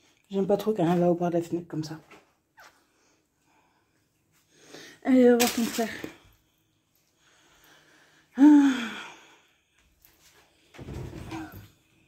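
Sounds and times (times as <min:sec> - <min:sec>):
faint soft rustle: 0:09.8 - 0:12.0.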